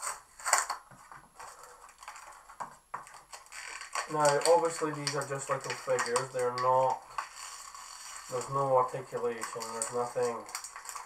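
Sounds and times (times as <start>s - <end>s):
packaging crinkling and rustling: 0.0s - 11.0s.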